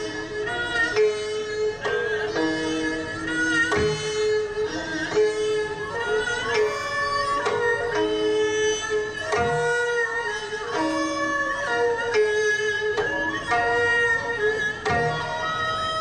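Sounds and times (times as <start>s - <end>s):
bowed and wind instruments: 0.0s - 16.0s
plucked zither: 0.0s - 16.0s.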